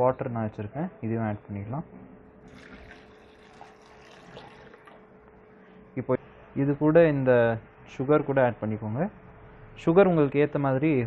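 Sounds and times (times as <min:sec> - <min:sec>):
water pouring into a steel jar: 0:02.5 - 0:05.0.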